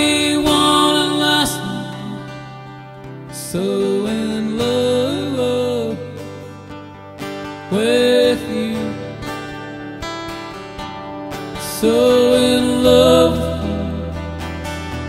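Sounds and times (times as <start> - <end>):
man singing: 0.0 - 2.6, 3.3 - 6.6, 7.6 - 9.5, 11.6 - 14.5
acoustic guitar strumming: 0.0 - 15.0.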